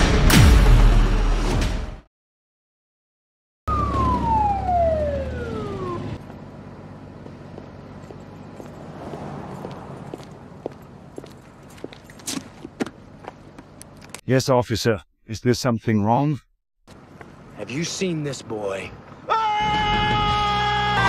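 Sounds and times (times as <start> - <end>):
police siren wailing: 3.7 - 6.3
street noise: 3.7 - 15.0, 16.9 - 21.0
motorcycle engine rumble: 3.8 - 14.2
footsteps: 7.2 - 13.9.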